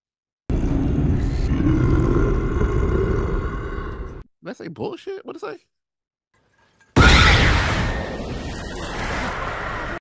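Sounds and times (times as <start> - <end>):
deep rumbling roar: 0.5 - 4.2.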